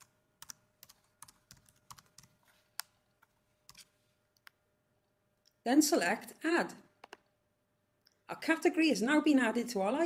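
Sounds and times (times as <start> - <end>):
faint keyboard typing: 0.0 - 4.6, 7.0 - 7.3.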